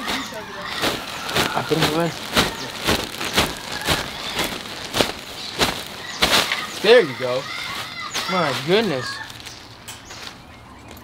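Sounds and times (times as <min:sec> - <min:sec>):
plastic bag crinkling: 0:00.0 - 0:10.4.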